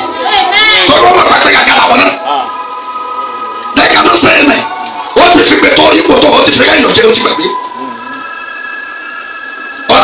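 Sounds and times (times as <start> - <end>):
high ringing tones: 2.2 - 10.0.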